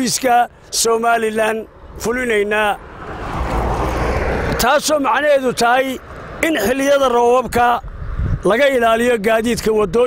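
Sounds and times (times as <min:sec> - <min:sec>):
man's voice: 0:00.0 - 0:02.8, 0:04.5 - 0:07.8, 0:08.4 - 0:10.0
car passing: 0:00.5 - 0:08.4.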